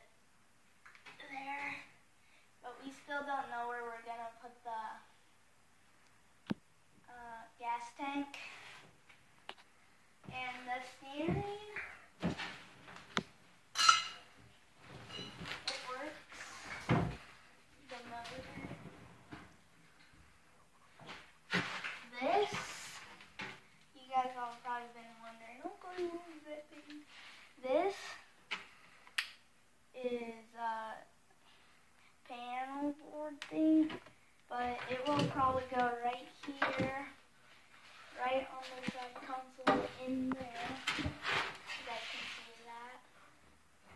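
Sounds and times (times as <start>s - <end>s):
person talking: 10.3s - 11.8s, 15.6s - 16.9s, 17.8s - 18.8s, 22.0s - 23.1s, 24.0s - 28.1s, 32.3s - 37.2s, 38.2s - 41.2s, 41.8s - 43.0s.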